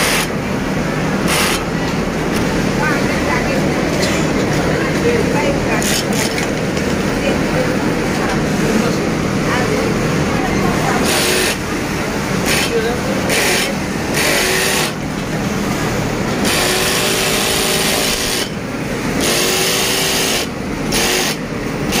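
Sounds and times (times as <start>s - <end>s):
sewing machine hiss: 0.0s - 0.4s, 1.2s - 1.8s, 11.0s - 11.7s, 13.3s - 15.0s, 16.4s - 22.0s
sewing machine hum: 0.0s - 22.0s.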